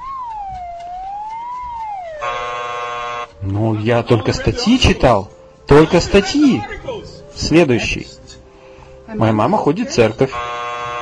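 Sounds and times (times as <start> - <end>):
cartoon whistle gliding up and down: 0.0 - 2.4.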